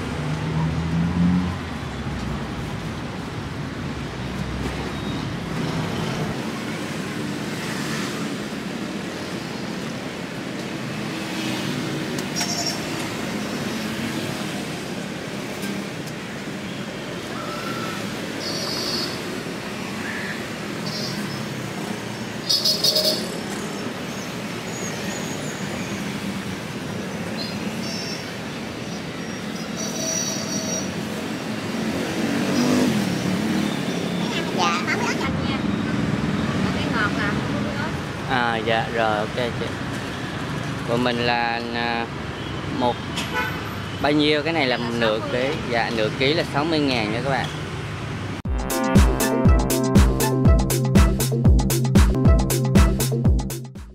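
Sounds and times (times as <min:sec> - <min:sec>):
street traffic noise: 0:00.0 - 0:53.9.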